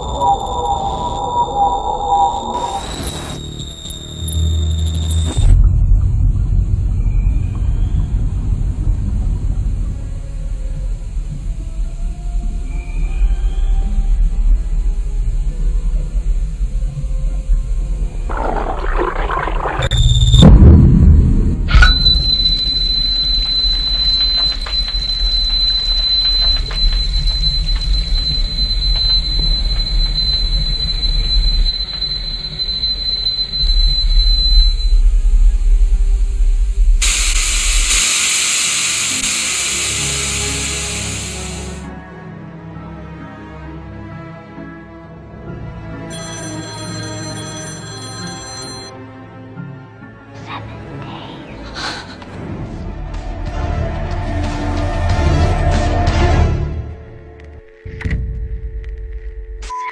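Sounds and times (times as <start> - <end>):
high-pitched whine: 0.0 - 41.9
low rumble: 5.4 - 12.6, 14.2 - 38.1
sudden loud burst: 18.3 - 24.2, 37.0 - 41.8
loud hiss: 36.8 - 41.9.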